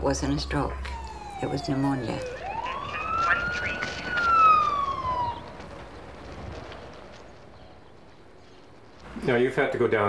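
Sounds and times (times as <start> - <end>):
emergency siren wailing: 0.0 - 7.5.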